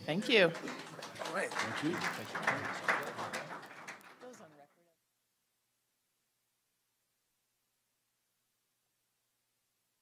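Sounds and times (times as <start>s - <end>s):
murmuring voices: 0.0s - 4.4s
hand claps: 0.2s - 4.8s.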